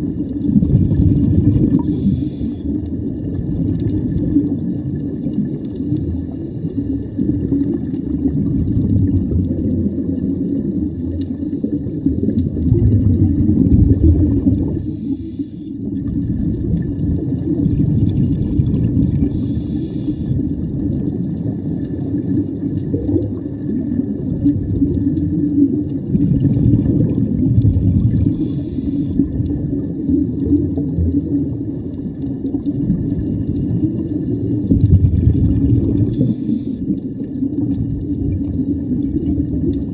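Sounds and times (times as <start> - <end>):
bubbling rumble of exhaled air: 0.0 - 39.9
regulator inhalation hiss: 1.8 - 2.8, 14.8 - 15.8, 19.3 - 20.4, 28.3 - 29.2, 36.1 - 36.9.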